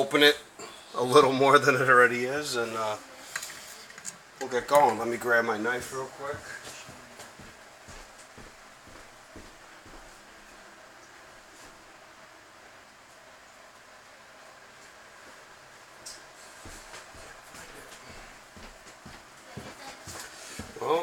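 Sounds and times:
faint steady hiss: 0.0s - 21.0s.

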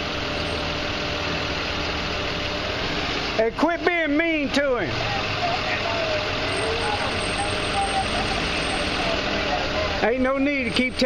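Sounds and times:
vehicle engine idling: 0.0s - 11.0s
faint voices talking: 3.6s - 11.0s.

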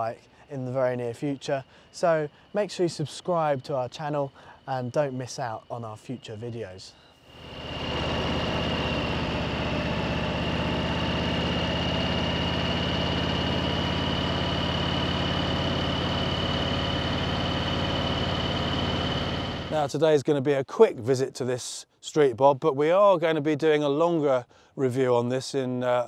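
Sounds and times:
thin high whine: 0.0s - 20.0s
motorcycle engine running: 7.3s - 19.8s.

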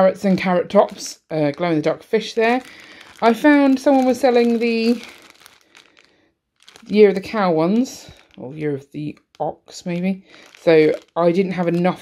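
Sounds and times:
plastic bag crinkling: 2.0s - 12.0s.

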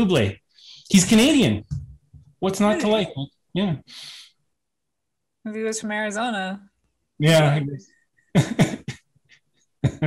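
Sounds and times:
person laughing: 8.4s - 9.0s.

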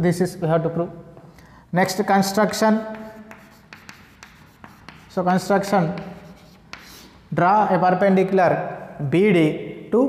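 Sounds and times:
chalk scratching on chalkboard: 1.8s - 7.2s.

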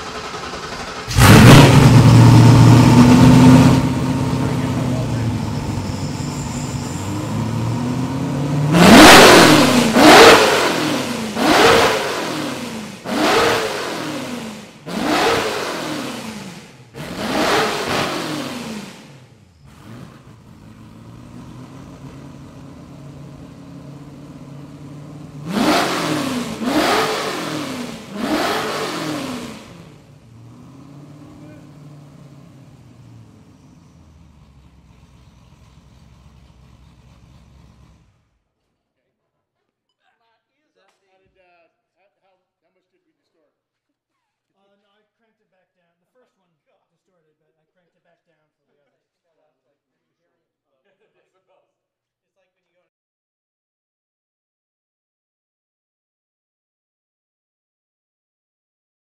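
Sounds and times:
engine revving in throttle blips: 0.0s - 38.1s
car engine idling: 0.0s - 38.3s.

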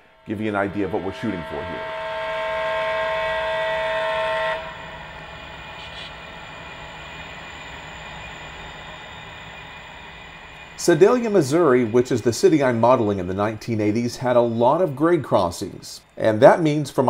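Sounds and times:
model locomotive chime horn: 0.0s - 9.2s, 10.6s - 17.0s.

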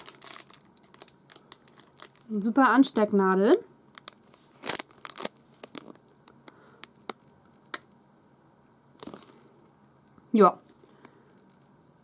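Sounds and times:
plastic bag crinkling: 0.0s - 3.2s, 3.9s - 6.3s, 9.0s - 9.4s.

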